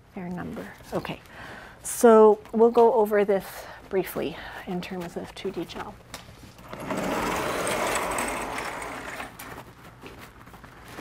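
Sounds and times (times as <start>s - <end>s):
sliding chalkboard rumbling on track: 6.6s - 9.6s.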